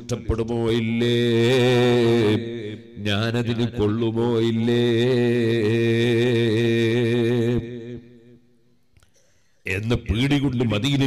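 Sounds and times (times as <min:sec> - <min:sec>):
man chanting into microphone: 0:00.0 - 0:08.4, 0:09.7 - 0:11.0.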